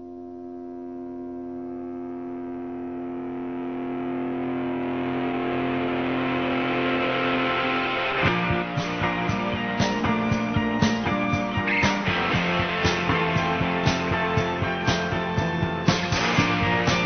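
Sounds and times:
sustained droning chord: 0:00.0 - 0:17.0.

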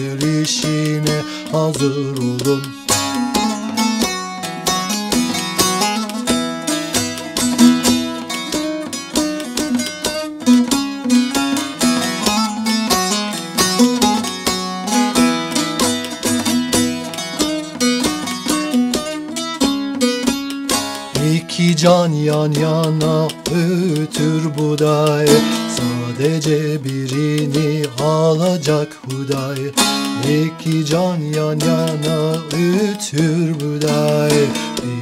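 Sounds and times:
plucked long-necked lute: 0:00.0 - 0:35.0.

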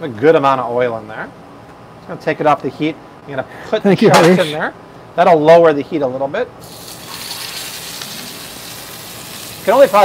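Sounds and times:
meat sizzling in a frying pan: 0:06.6 - 0:10.0.

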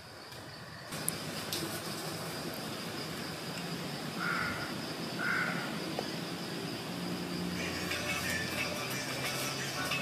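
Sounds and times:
high-pitched insect drone: 0:00.0 - 0:10.0
faint music: 0:05.7 - 0:10.0.

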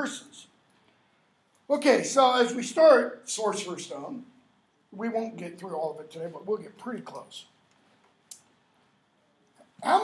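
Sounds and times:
man speaking: 0:00.0 - 0:00.6, 0:01.7 - 0:07.6, 0:09.6 - 0:10.0.

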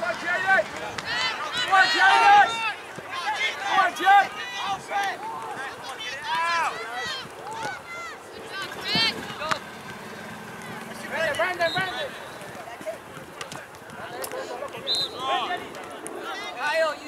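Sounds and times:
open-air background noise: 0:00.0 - 0:17.0
players and spectators shouting: 0:00.0 - 0:17.0.

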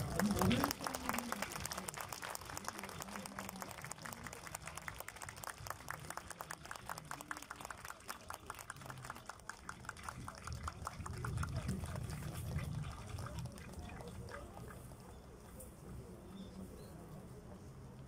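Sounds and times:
audience clapping: 0:00.0 - 0:14.9
faint voices: 0:00.0 - 0:18.0.

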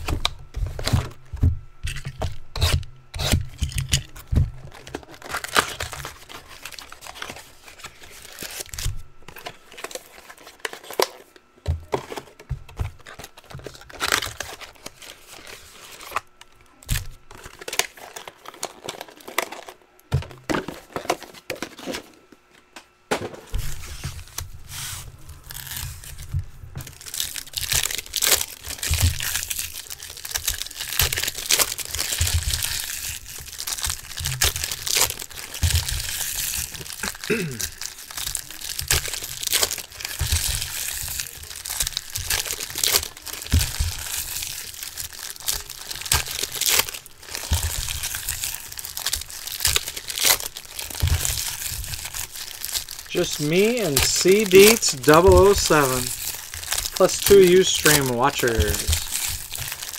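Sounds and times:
foil wrappers crinkling: 0:00.0 - 0:22.7, 0:23.6 - 0:59.9
foil wrappers tearing: 0:01.8 - 0:22.1, 0:23.7 - 0:59.9.

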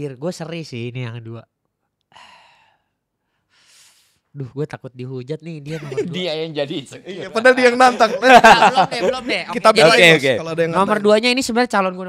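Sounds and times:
breath in: 0:02.1 - 0:04.3.

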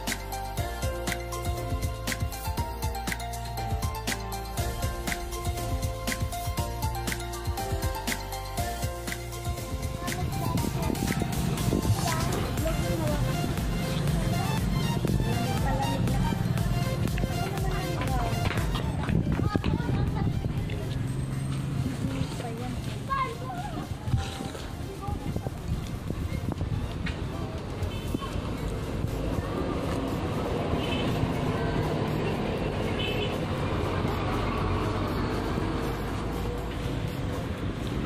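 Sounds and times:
background music: 0:00.0 - 0:38.0
road traffic rumble: 0:00.0 - 0:38.0
indistinct voices: 0:07.4 - 0:38.0.

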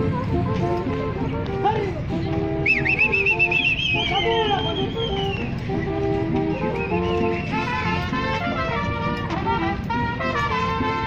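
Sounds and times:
street orchestra music: 0:00.0 - 0:11.0
shrill warbling whistle: 0:02.6 - 0:05.5, 0:06.5 - 0:07.7.

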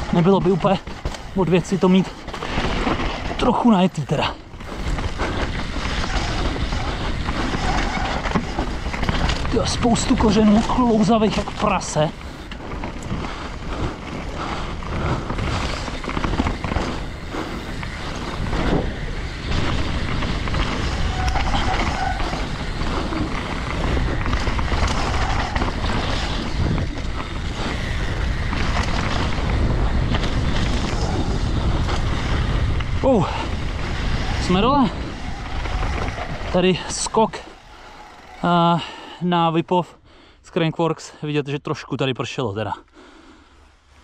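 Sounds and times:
bike frame and chain rattling: 0:00.0 - 0:39.3
bike tyres rolling on dirt: 0:00.0 - 0:40.8, 0:43.0 - 0:44.0
wind on microphone: 0:04.5 - 0:36.8.

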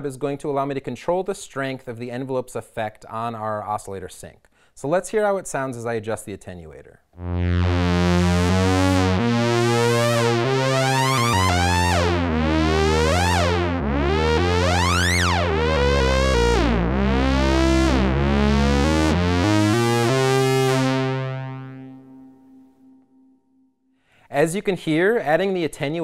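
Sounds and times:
synthesizer sweeping notes: 0:07.2 - 0:23.1.

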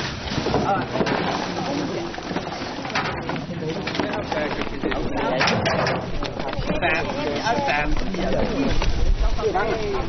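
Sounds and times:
boat background sound: 0:00.0 - 0:10.0
men talking: 0:03.2 - 0:10.0.

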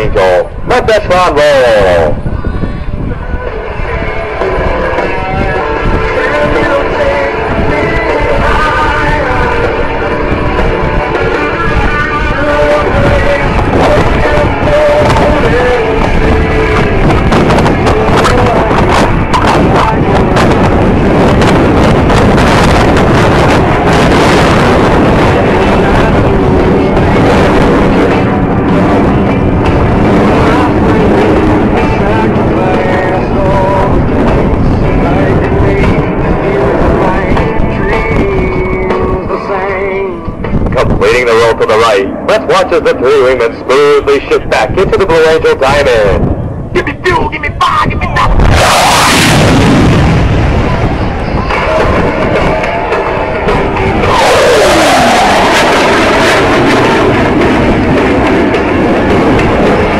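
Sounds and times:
music over loudspeakers: 0:00.0 - 0:59.9
jet aircraft rushing past: 0:03.4 - 0:38.8, 0:39.7 - 0:59.9.

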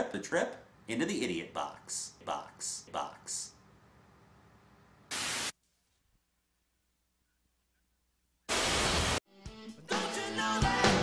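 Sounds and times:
loud burst of static: 0:05.1 - 0:05.5, 0:08.5 - 0:09.2.

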